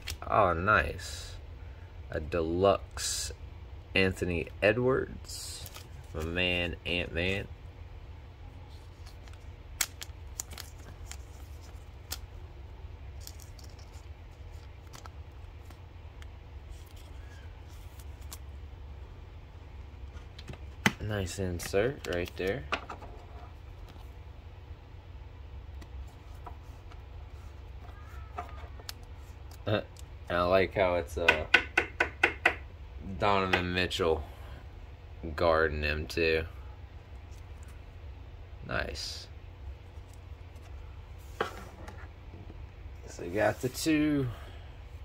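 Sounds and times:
handling trading cards: 0.0s - 0.4s, 4.2s - 7.4s, 8.4s - 24.3s, 25.5s - 30.5s, 36.9s - 38.2s, 38.8s - 44.3s
low steady hum: 0.0s - 45.0s.

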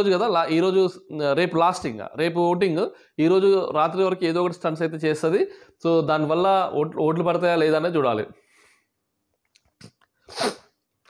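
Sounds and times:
man speaking: 0.0s - 8.4s
man sneezing: 9.8s - 10.8s.

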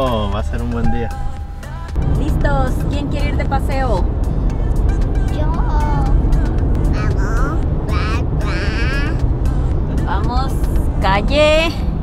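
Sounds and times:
road and engine rumble in car: 0.0s - 12.0s.

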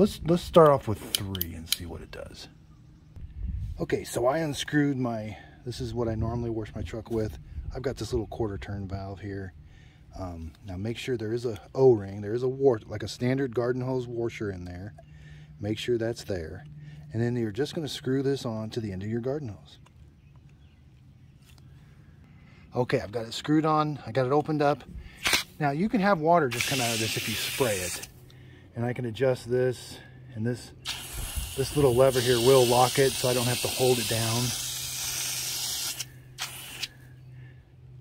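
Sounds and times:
low steady hum: 0.0s - 35.4s, 36.0s - 38.0s
hose nozzle shutting off: 26.5s - 28.1s, 30.8s - 36.9s
spray gun clicks: 26.5s - 28.1s, 30.9s - 36.9s.

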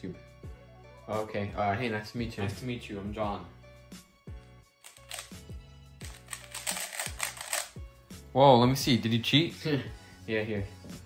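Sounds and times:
background music with steady beat: 0.0s - 11.0s
puzzle cube plastic clicking: 4.8s - 5.4s, 6.0s - 7.8s.

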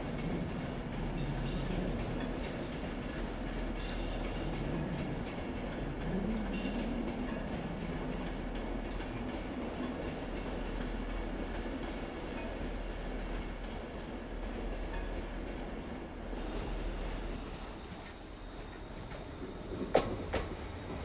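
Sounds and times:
train rumbling past: 0.0s - 21.0s.

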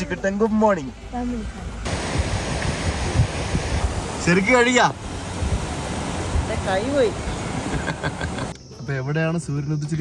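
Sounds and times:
waterfall rushing: 1.8s - 8.5s
wind buffeting microphone: 1.9s - 4.3s, 4.9s - 8.5s.

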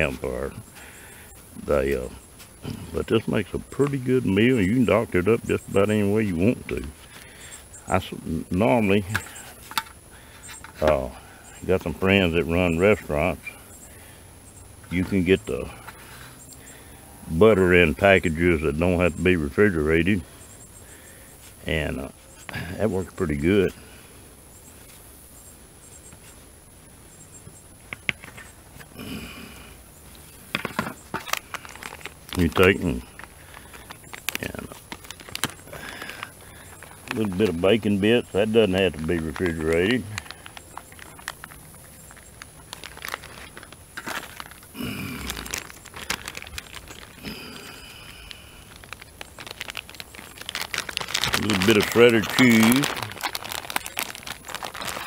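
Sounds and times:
chirps: 0.0s - 17.0s, 20.1s - 23.0s, 24.4s - 32.0s
plastic packages crinkling: 30.5s - 55.0s.

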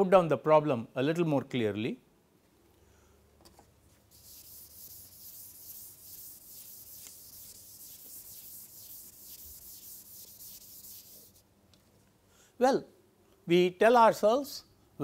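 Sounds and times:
duster wiping chalkboard: 4.0s - 11.4s.

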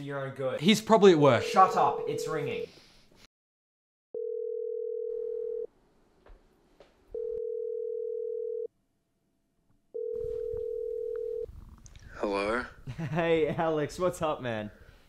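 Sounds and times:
telephone ringback tone: 4.2s - 5.7s, 7.2s - 8.7s, 10.0s - 11.5s.

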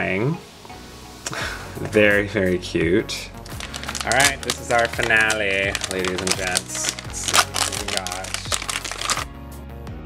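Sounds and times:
background music: 0.0s - 10.0s
foil packaging crinkling: 3.4s - 9.3s.

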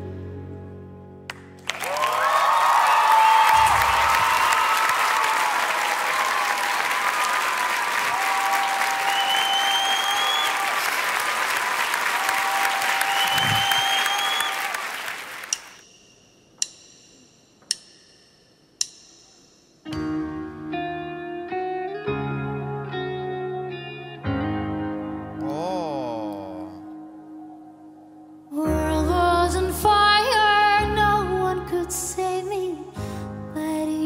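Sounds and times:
audience applauding and cheering: 1.3s - 15.8s
rising whistles: 8.3s - 10.8s, 12.2s - 15.0s
drumsticks clicking together: 16.6s - 18.2s.

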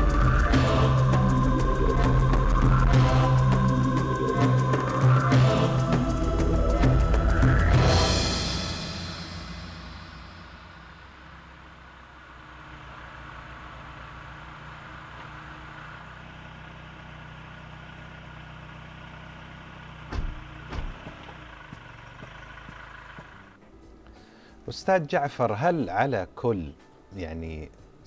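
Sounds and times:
car engine idling: 0.0s - 24.0s
short knocks: 20.1s - 21.9s.

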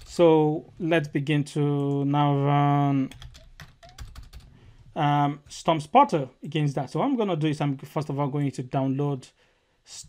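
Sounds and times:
computer keyboard typing clicks: 3.1s - 4.4s.

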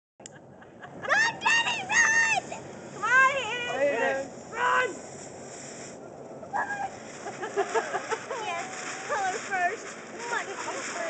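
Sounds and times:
fountain firework hissing: 0.4s - 11.0s
voices chattering and exclaiming: 1.0s - 11.0s.

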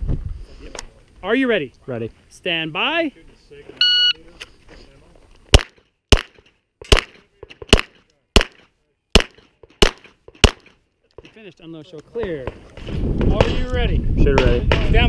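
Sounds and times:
pistol shots: 5.5s - 10.8s.

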